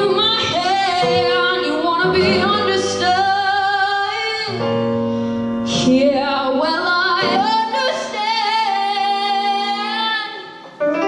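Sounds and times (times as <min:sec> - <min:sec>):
woman singing a slow ballad: 0:00.0 - 0:05.0, 0:05.6 - 0:10.6
electric keyboard chords: 0:00.0 - 0:11.0.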